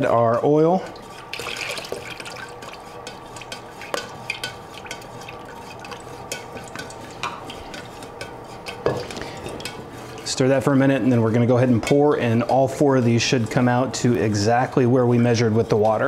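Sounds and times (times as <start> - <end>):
utensil scraping metal pitcher: 0.8 - 16.0.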